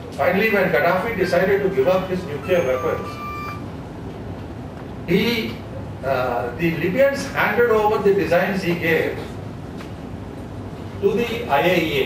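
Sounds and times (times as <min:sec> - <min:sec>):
steady low hum: 0:00.0 - 0:12.0
short electronic beep: 0:01.7 - 0:03.7.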